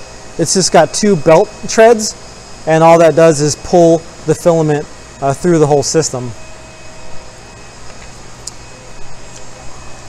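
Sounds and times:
machinery hum and hiss: 0.0 - 10.0.

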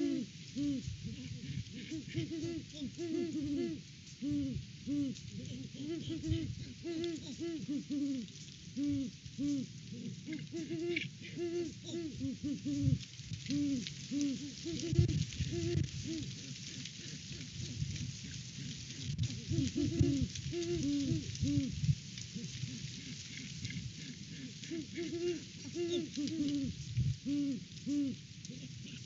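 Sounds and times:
owls hooting: 0.0 - 29.0
steady high hiss: 0.0 - 29.0.

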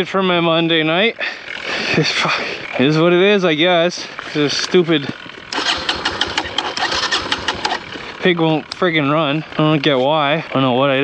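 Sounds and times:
electric starter cranking engine: 1.2 - 9.7.

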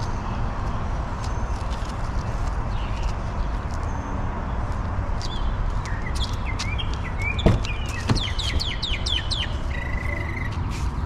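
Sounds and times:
small birds chirping: 0.0 - 11.0
dull knocks: 7.4 - 8.7.

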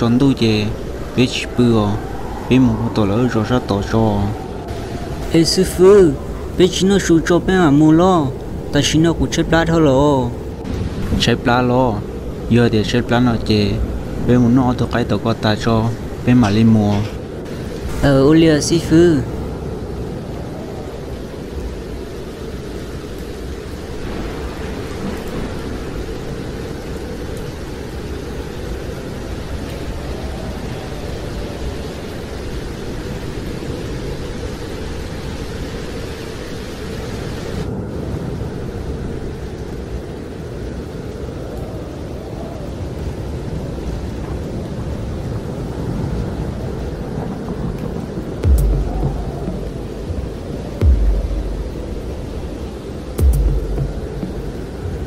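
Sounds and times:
heavy rain: 0.0 - 55.0
rolling thunder: 10.3 - 13.1, 40.8 - 55.0
loud thunderclap: 47.2 - 55.0.

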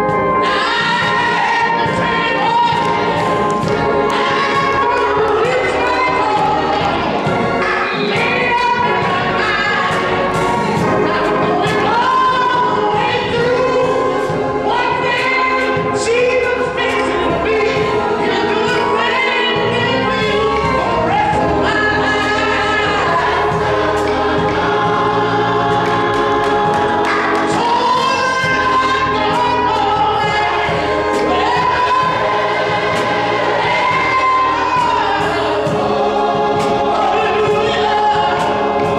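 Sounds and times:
gospel choir singing: 0.0 - 38.9
organ: 0.0 - 38.9.

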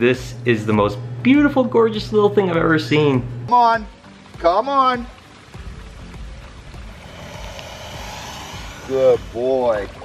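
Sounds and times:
creek water sloshing: 3.8 - 10.0.

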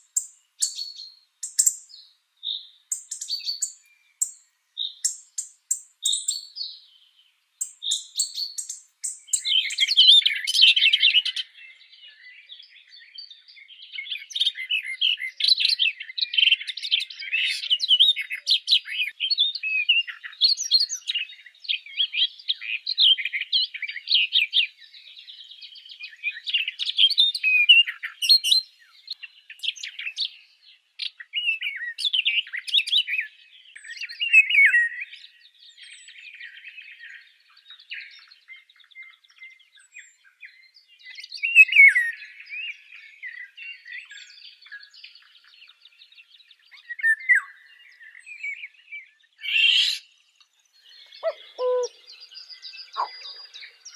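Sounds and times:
birds chirping and twittering: 0.0 - 53.9.

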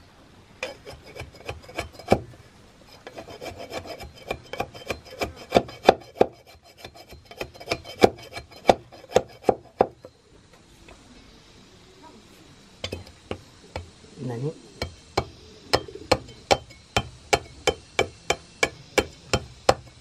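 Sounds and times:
knife scraping wood: 0.6 - 2.3, 2.9 - 9.9.

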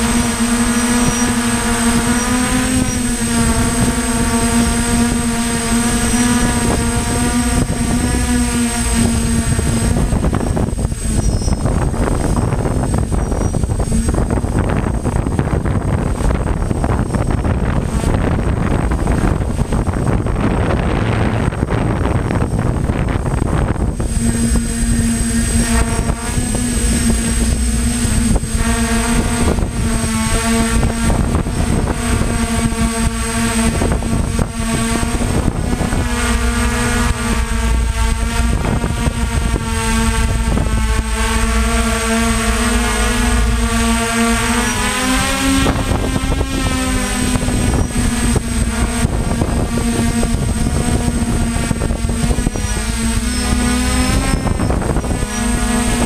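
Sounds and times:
drone motors humming: 0.0 - 56.0
wind buffeting microphone: 0.0 - 56.0.

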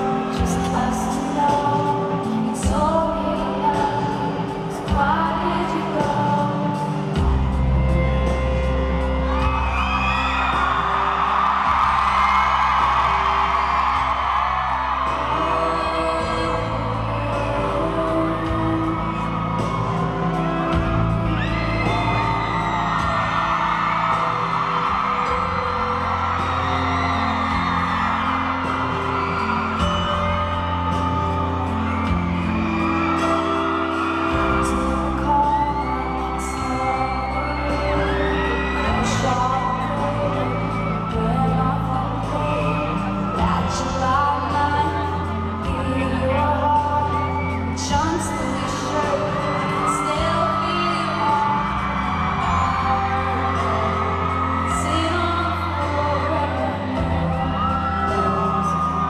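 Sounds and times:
woman singing: 0.0 - 9.1, 12.7 - 23.5, 29.8 - 59.0
acoustic guitar: 0.0 - 59.0
crowd whooping: 0.0 - 59.0.

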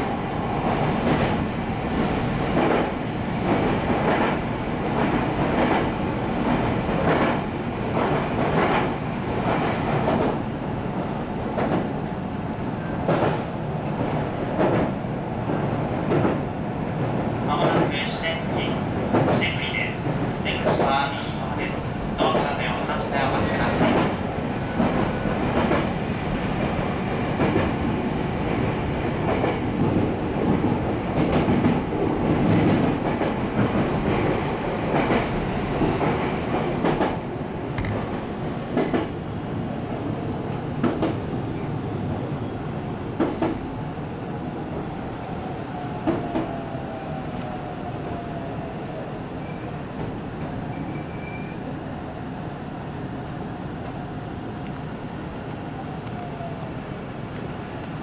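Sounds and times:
train wheels rumbling: 0.0 - 48.4
rail joint clacks: 12.9 - 27.8, 29.2 - 37.2, 37.8 - 39.6.

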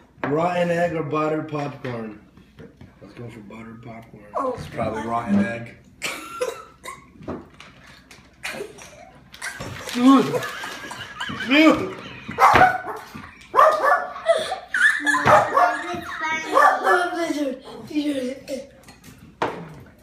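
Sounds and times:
man and boy laughing: 8.5 - 16.0.

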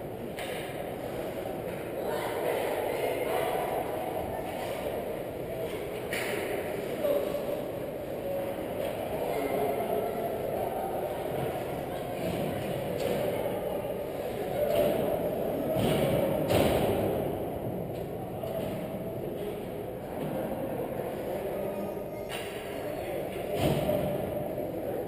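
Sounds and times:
hockey rink noise: 0.0 - 25.0.

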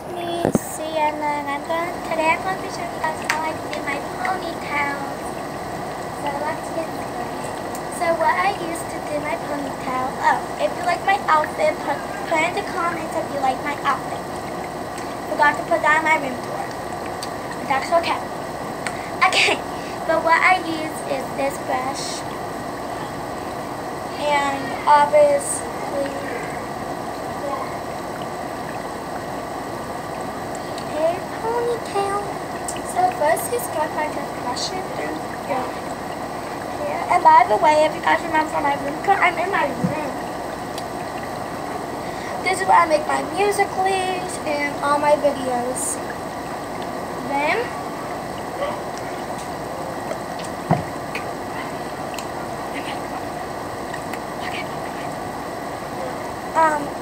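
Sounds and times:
air conditioner running: 0.0 - 57.0.

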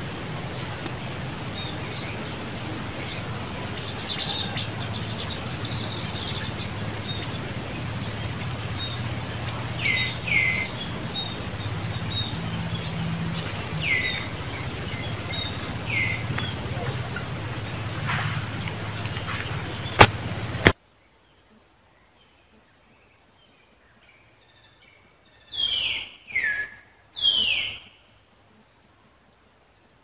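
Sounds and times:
birds calling with descending notes: 0.0 - 20.8, 23.2 - 28.0
steady low hum: 0.0 - 20.8.

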